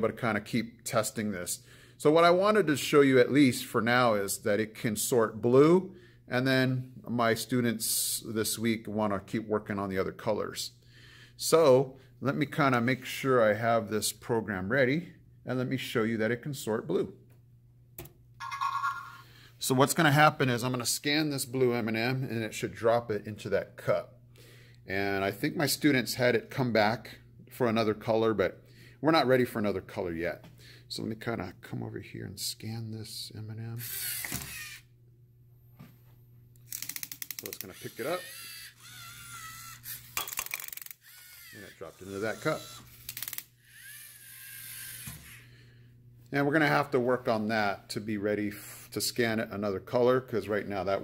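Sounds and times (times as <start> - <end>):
robot motor whining: 33.8 - 34.8, 36.7 - 45.5
quick clicks: 36.6 - 37.8.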